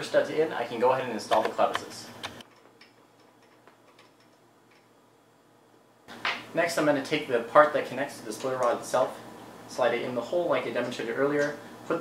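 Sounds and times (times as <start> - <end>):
small metallic clicks: 1.4 - 5.0.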